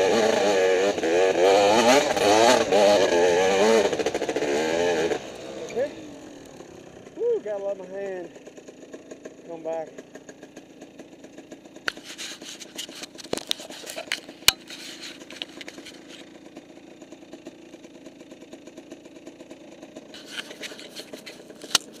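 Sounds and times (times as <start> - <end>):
bike knocking and rattling: 0.0 - 22.0
dirt bike engine running: 0.0 - 22.0.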